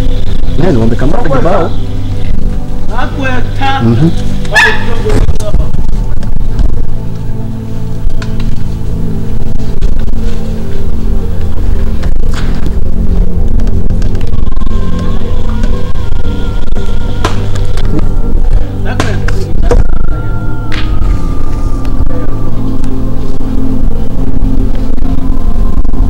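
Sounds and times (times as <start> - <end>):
background music drone: 0.0 - 26.0
thin wavering high tone: 14.3 - 18.9, 19.5 - 26.0.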